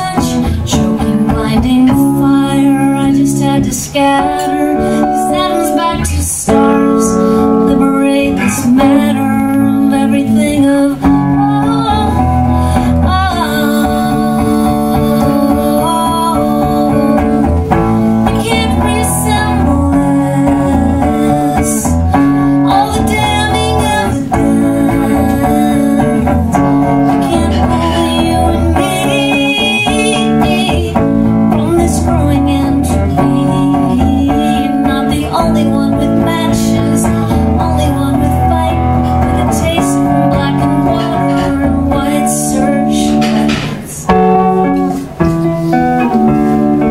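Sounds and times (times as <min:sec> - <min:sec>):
woman singing: 0:00.0 - 0:45.0
electric guitar strummed: 0:00.0 - 0:46.9.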